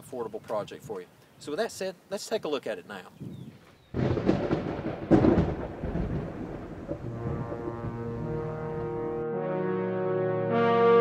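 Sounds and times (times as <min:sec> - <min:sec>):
thunder crack: 0:03.9 - 0:09.2
thunder rumbling: 0:03.9 - 0:09.2
held music chord: 0:07.1 - 0:11.0.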